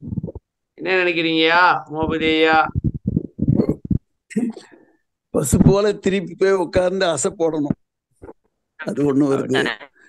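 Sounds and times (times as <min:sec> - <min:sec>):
choppy muffled low rumbling: 0:00.0 - 0:00.5, 0:02.0 - 0:04.1
man speaking over video call: 0:00.8 - 0:02.8, 0:04.3 - 0:07.8, 0:08.8 - 0:10.0.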